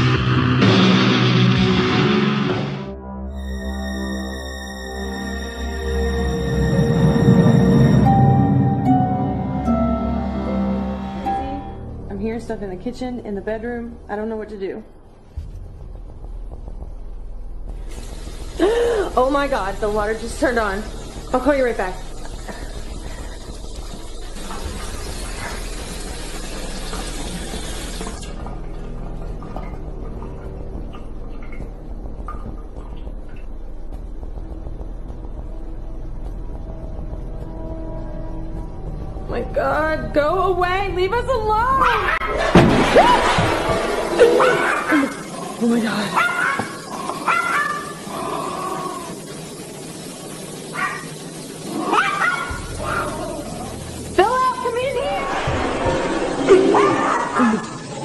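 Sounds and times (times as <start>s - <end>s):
faucet running into sink: 17.8s - 30.8s
dog barking: 41.8s - 42.5s, 46.2s - 48.0s, 50.7s - 51.1s, 51.9s - 53.2s.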